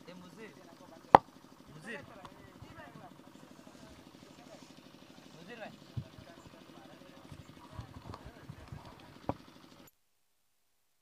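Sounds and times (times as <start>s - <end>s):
distant voices of players and spectators: 0.0s - 9.9s
low steady hum: 0.0s - 10.6s.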